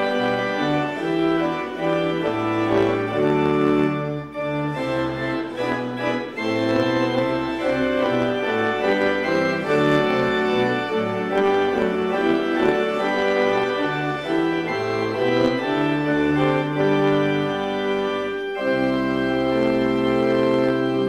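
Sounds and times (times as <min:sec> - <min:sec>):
organ playing hymn chords: 0:00.0 - 0:21.0.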